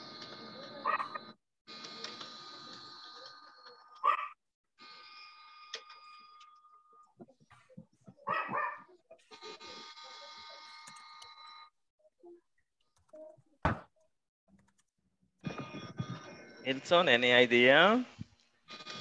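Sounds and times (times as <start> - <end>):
dog barking: 0.8 - 1.2, 4.0 - 4.4, 8.2 - 8.9.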